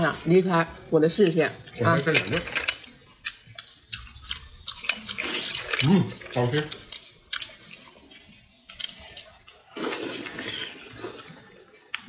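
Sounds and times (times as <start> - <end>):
wet chewing mouth sounds: 2.7 - 12.0.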